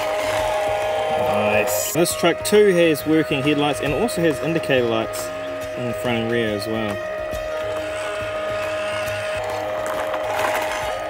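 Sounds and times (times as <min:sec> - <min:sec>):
background music: 0:00.0 - 0:11.0
electric motor whine: 0:00.0 - 0:11.0.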